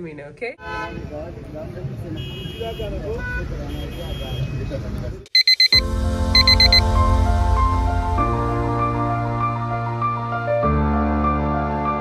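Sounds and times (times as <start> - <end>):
traffic: 0.0 - 8.2
quick electronic beeps: 5.3 - 5.8, 6.4 - 6.9
background music: 5.7 - 12.0.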